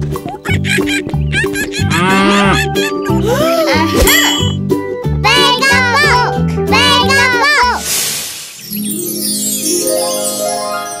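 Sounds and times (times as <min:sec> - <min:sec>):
children's background music: 0:00.0 - 0:08.1.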